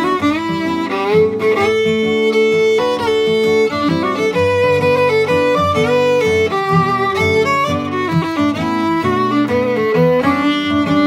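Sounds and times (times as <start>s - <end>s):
fiddle playing waltz melody: 0.0s - 11.0s
guitar accompaniment: 0.0s - 11.0s.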